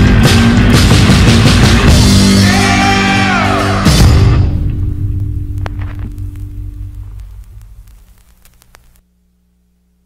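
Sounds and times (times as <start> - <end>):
faint clicks and crackle: 5.1 - 9.1.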